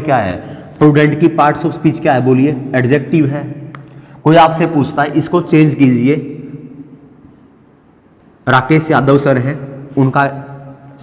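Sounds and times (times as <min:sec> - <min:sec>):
marker pen scratching on whiteboard: 0:06.8 - 0:09.0.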